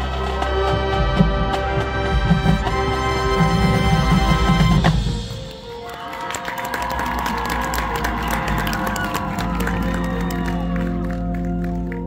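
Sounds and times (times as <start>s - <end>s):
crowd cheering and applauding: 0.0s - 2.2s, 4.2s - 12.0s.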